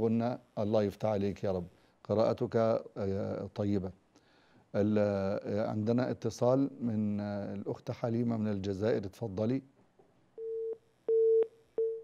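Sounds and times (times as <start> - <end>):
telephone busy tone beeps: 10.4 - 12.0.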